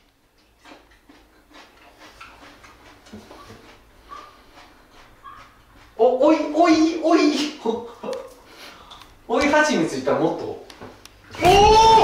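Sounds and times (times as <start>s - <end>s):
chewing cucumber: 0.0s - 9.1s.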